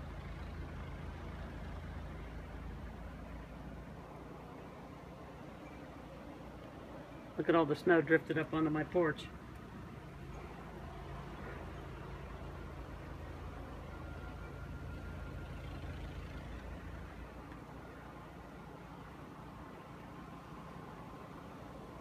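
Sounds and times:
snowblower engine running: 0.0s - 22.0s.

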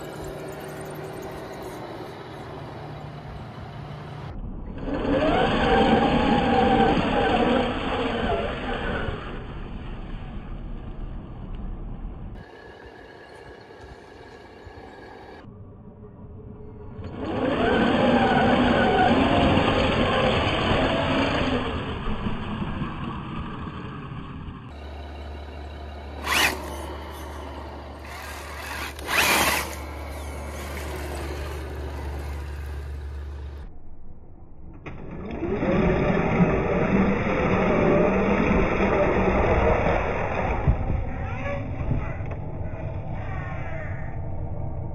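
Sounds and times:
tires slapping wet mud: 0.0s - 11.0s, 17.2s - 33.6s
electric rc truck drivetrain: 0.0s - 11.8s, 12.4s - 15.5s, 16.9s - 33.8s, 34.6s - 43.0s.

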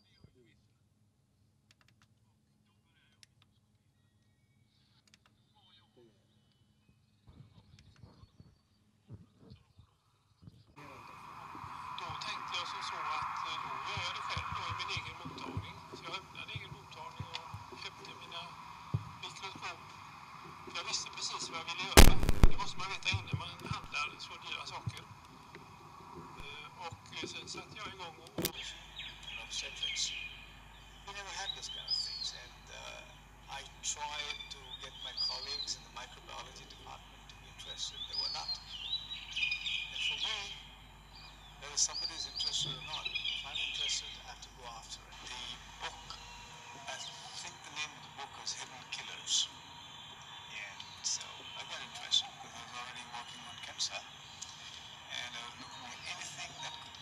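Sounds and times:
small birds singing: 3.5s - 57.0s
man speaking over loudspeakers: 10.8s - 18.6s, 19.2s - 20.0s, 20.7s - 25.1s, 26.4s - 30.3s, 31.1s - 38.6s, 39.9s - 40.6s, 41.6s - 46.2s, 46.9s - 49.5s, 50.5s - 57.0s
steady background noise: 10.8s - 57.0s.

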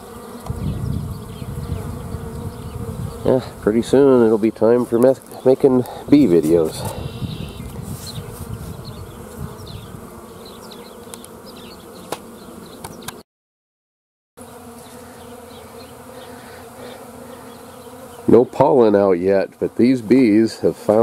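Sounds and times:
bees buzzing: 0.0s - 13.2s, 14.4s - 21.0s.

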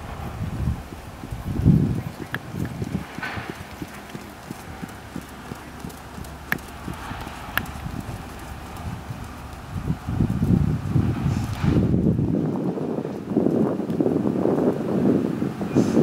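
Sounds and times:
horse hooves trotting on sand: 0.0s - 14.8s
sharp clicks: 1.9s - 9.7s.

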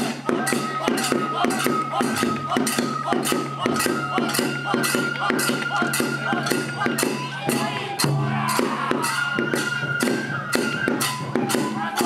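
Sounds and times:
drum strikes: 0.0s - 12.0s
jingling percussion: 0.0s - 12.0s.

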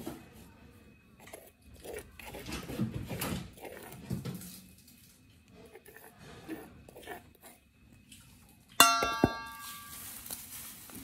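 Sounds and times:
metal spoon striking steel bowl: 8.8s - 10.0s
bowl ringing: 8.8s - 10.2s.

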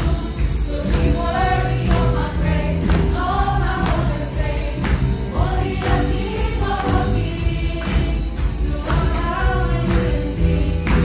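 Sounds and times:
tambourines struck: 0.0s - 11.0s
worship band with singers: 0.0s - 11.0s.

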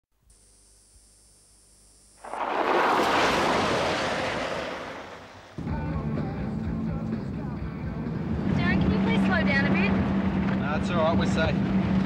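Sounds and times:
loud rushing noise: 2.2s - 5.6s.

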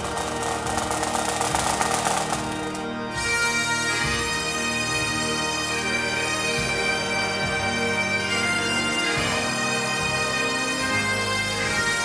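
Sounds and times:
bagpipe drones: 0.0s - 12.0s.

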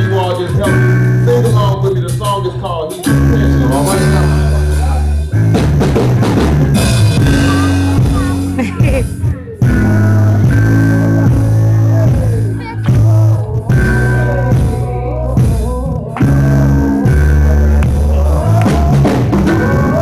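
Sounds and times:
man singing gospel: 0.0s - 5.3s, 7.2s - 20.0s
drums: 0.0s - 20.0s
guitar: 0.0s - 20.0s
sustained bass chords: 0.0s - 20.0s.

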